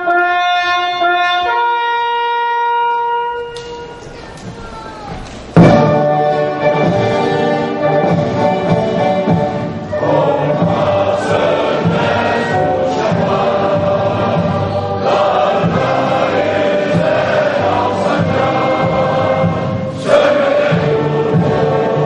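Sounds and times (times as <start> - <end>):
choir singing: 5.6 - 22.0
orchestral music: 5.6 - 22.0.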